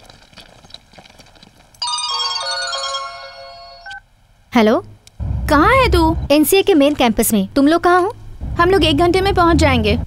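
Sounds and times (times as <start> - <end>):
mobile phone beep: 3.5 - 4.0.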